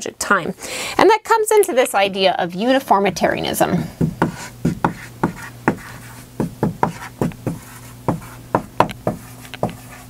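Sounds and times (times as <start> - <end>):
marker writing on whiteboard: 4.0 - 10.0.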